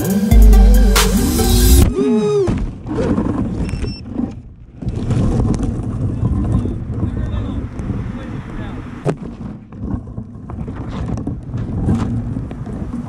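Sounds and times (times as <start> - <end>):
background music tape-stop: 0.0 - 1.8
wind buffeting microphone: 2.7 - 13.0.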